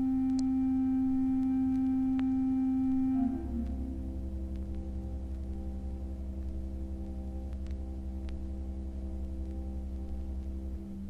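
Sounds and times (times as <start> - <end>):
steady electronic tone: 0.0 - 11.0.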